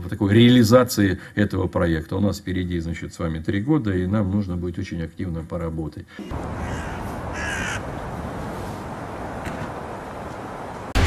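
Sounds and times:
outdoor ambience hiss: 0.0 - 11.0
harsh bird call: 6.2 - 7.9.

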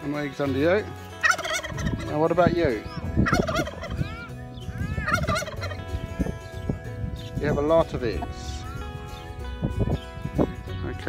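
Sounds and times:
poultry warbling calls: 1.2 - 5.9.

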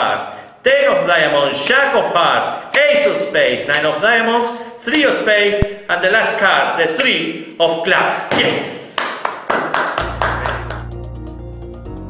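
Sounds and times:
hands clapping in applause: 8.3 - 11.0
low music drone: 10.0 - 12.0.

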